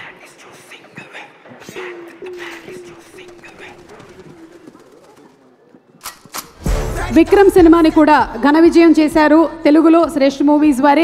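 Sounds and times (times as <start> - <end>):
faint voices: 0.0 - 6.2.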